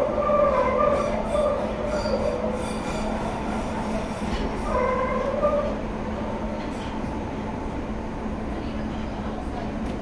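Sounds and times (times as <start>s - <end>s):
train wheels squealing on rails: 0.0s - 5.8s
train low hum and rumble: 0.0s - 10.0s.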